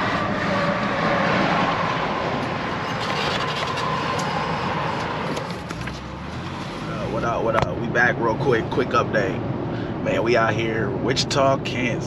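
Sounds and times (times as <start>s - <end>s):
car road and tyre noise: 0.0s - 12.0s
faint steady whine: 0.0s - 12.0s.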